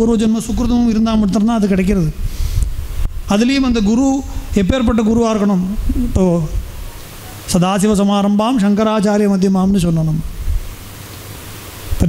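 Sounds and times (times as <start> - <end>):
sound system hiss and hum: 0.0 - 12.0
man chanting: 3.3 - 6.7.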